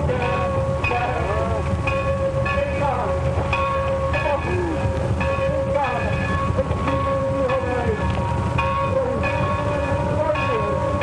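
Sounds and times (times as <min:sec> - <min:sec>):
ringing metallic tones: 0:00.0 - 0:11.0
steam train rumble: 0:00.0 - 0:11.0.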